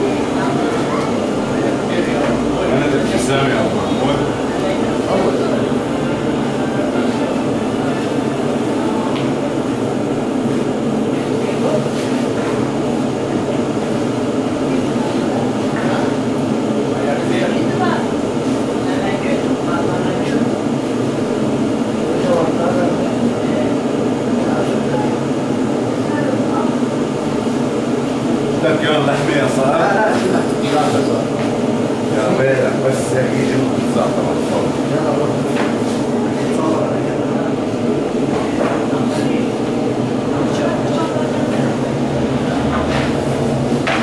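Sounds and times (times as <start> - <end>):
bread oven roaring: 0.0 - 44.0.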